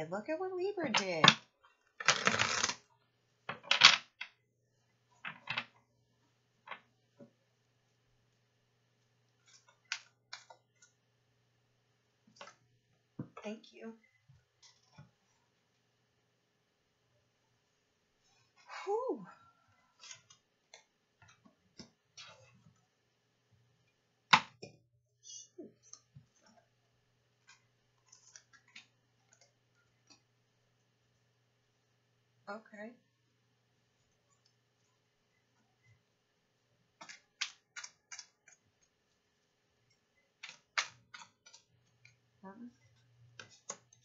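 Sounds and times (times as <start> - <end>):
cards being shuffled: 2.0 - 2.8
cards clicking and rustling: 2.0 - 2.8, 37.0 - 38.6, 40.4 - 42.1.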